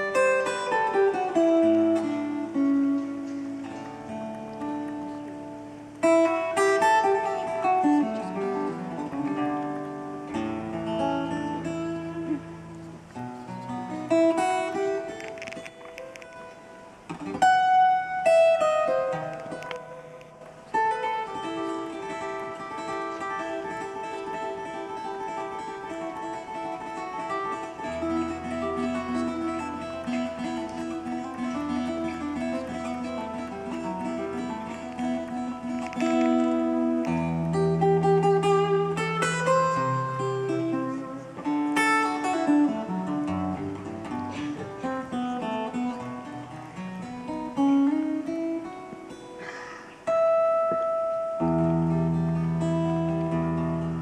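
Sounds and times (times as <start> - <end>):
folk-rock band playing: 0.0 - 54.0
plucked acoustic guitar: 0.0 - 54.0.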